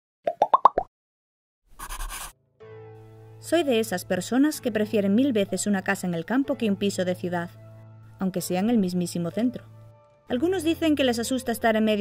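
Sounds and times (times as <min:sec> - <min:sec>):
cartoon pop sound effects: 0:00.3 - 0:00.9.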